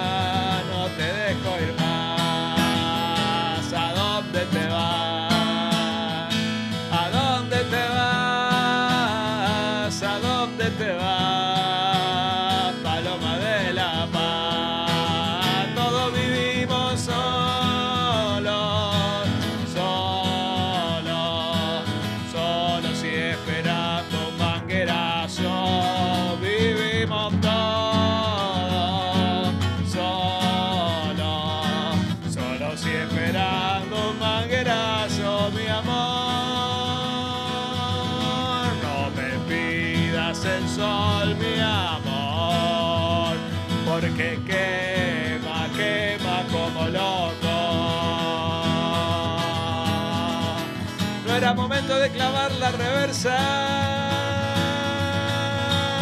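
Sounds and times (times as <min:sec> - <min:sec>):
acoustic guitar music: 0:00.0 - 0:56.0.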